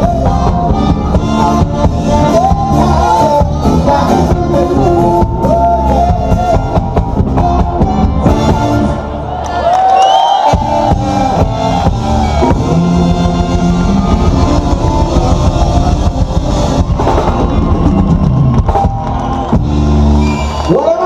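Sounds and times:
ska band playing: 0.0 - 9.2, 10.4 - 20.6.

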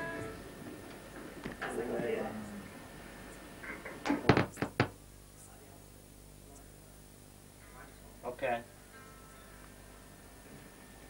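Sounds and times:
sharp knocks: 4.1 - 5.0.

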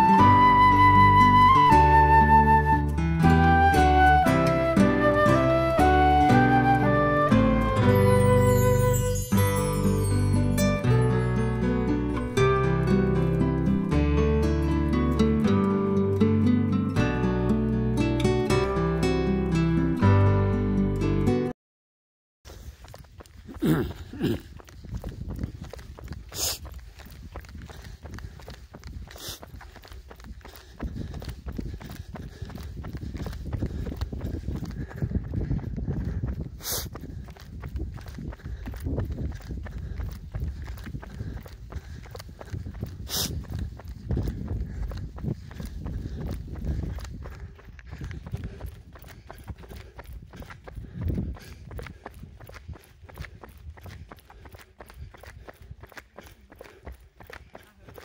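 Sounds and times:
running footsteps on asphalt: 22.5 - 58.0
wind rumble on microphone: 22.8 - 56.2.

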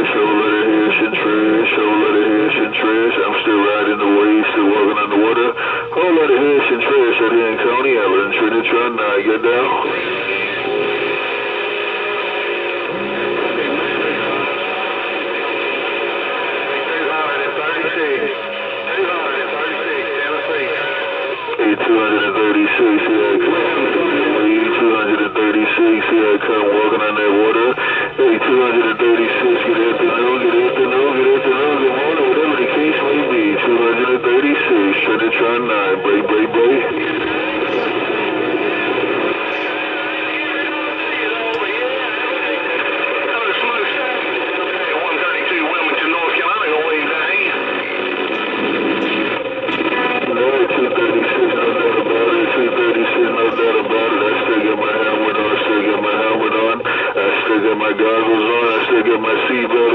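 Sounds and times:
radio voices: 0.0 - 59.9
steady radio tones: 0.0 - 59.9.

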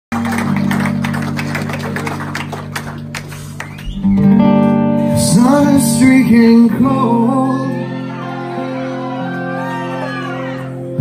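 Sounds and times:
live rock band: 0.2 - 11.0.

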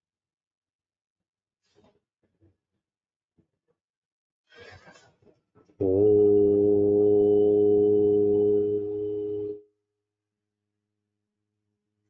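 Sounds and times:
low hum: 5.8 - 9.6.

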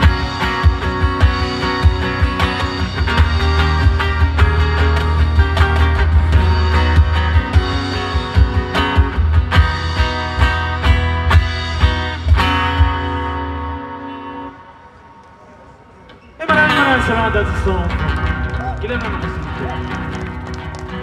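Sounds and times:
bass line: 0.0 - 14.4
strummed acoustic guitars: 0.0 - 14.6
crowd noise and voices: 0.0 - 21.0.

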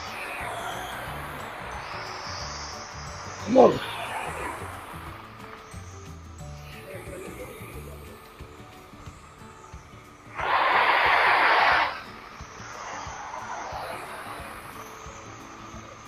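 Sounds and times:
faint background music: 0.0 - 16.0.

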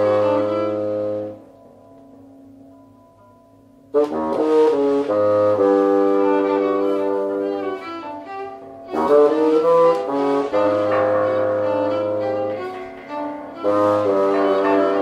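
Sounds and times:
bassoon: 0.0 - 1.9, 3.9 - 15.0
violin: 5.0 - 15.0.

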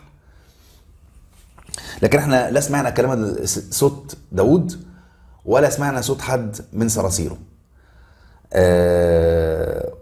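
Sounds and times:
man speaking: 1.7 - 7.5, 8.5 - 10.0.

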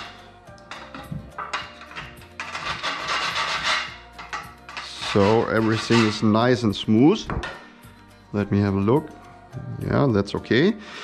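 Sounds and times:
file rasping on metal: 1.6 - 6.5.

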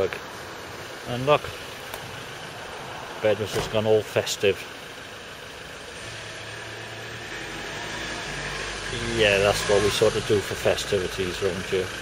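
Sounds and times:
street background noise: 0.0 - 12.0
vehicle engine running: 0.0 - 12.0.

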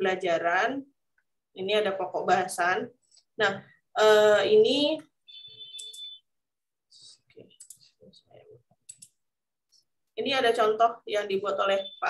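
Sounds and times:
computer mouse clicking: 5.8 - 6.1, 7.4 - 7.9, 8.8 - 9.8
high steady tone: 11.4 - 12.0.

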